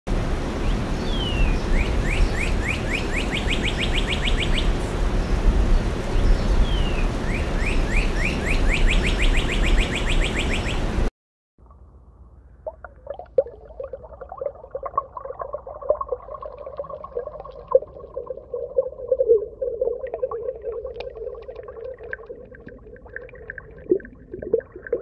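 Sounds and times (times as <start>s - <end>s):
bird singing chirps: 0.6s - 4.9s, 6.2s - 10.8s
low background rumble: 11.0s - 25.0s.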